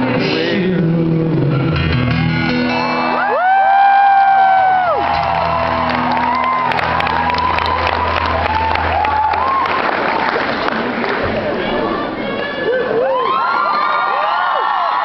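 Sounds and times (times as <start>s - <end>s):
crowd cheering and whooping: 2.7s - 11.8s, 12.5s - 15.0s.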